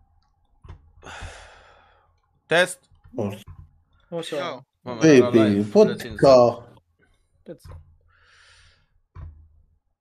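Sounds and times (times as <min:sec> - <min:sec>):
man sighing: 0:01.0 - 0:01.7.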